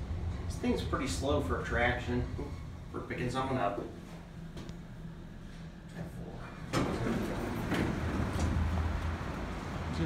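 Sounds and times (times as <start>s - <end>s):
elevator hum: 0.0s - 10.0s
elevator doors clunk: 6.5s - 9.0s.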